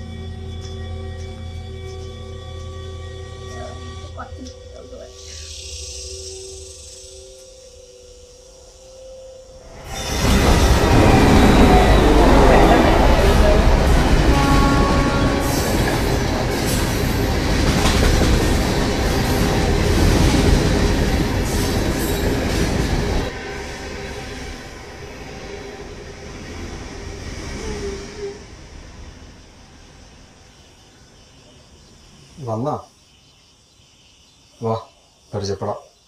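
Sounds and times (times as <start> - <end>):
train rumble and clatter: 9.6 - 30.4.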